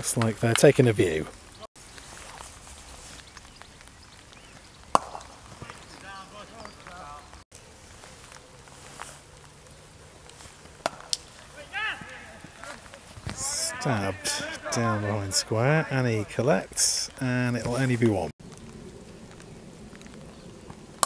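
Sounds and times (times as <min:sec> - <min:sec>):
distant voices: 0:03.7 - 0:21.0
bat hitting ball: 0:04.9 - 0:05.7, 0:10.8 - 0:11.3
person shouting: 0:11.4 - 0:16.5.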